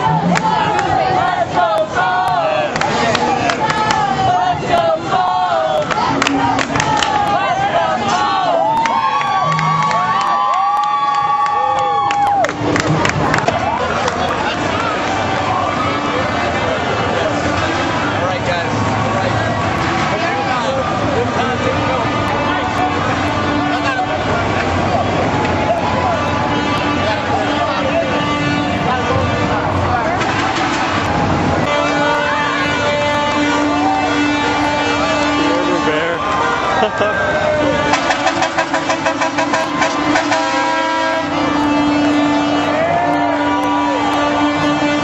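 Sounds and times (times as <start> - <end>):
street crowd voices: 0.0 - 45.0
vehicle engines: 0.0 - 45.0
person laughing: 36.8 - 37.4.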